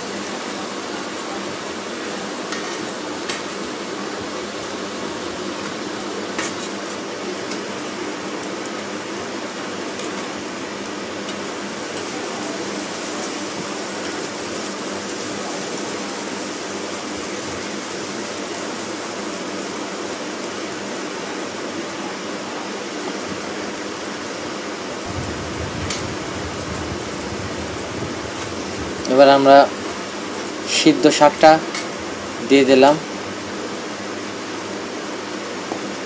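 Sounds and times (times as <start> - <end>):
onions sizzling in hot oil: 0.0 - 36.0.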